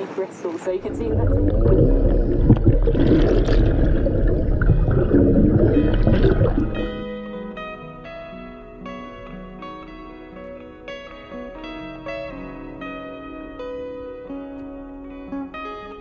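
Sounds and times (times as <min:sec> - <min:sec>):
underwater rushing noise: 0:00.0 - 0:07.2
plucked guitar music: 0:00.7 - 0:16.0.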